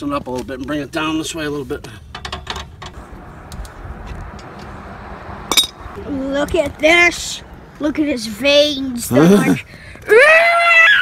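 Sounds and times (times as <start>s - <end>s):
sharp metallic clink: 5.5s - 5.8s.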